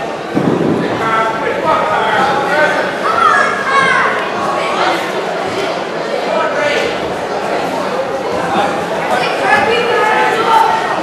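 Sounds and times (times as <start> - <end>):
voices shouting encouragement: 1.3 - 5.0.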